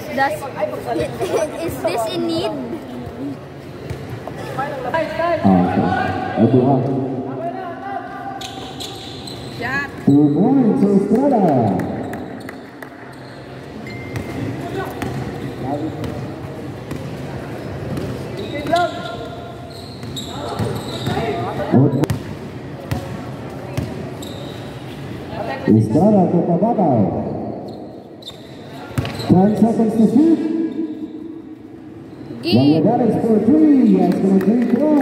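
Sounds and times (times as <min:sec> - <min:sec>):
basketball bouncing on indoor court: 0:13.9 - 0:24.4, 0:27.6 - 0:29.6.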